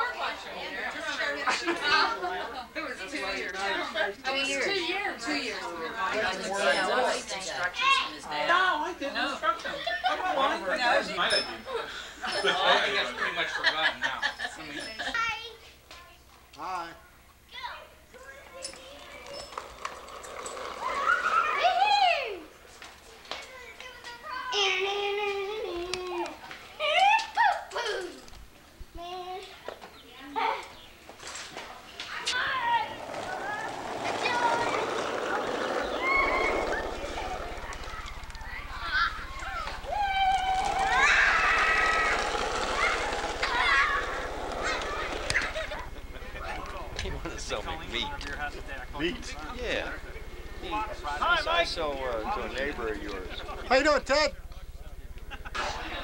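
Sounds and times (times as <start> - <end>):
children's voices: 0.0 - 2.7, 3.5 - 9.0, 17.5 - 30.8, 31.8 - 47.2
child's voice: 17.5 - 19.5, 23.3 - 28.3, 29.0 - 30.7, 32.1 - 35.4
steady low hum: 32.6 - 56.0.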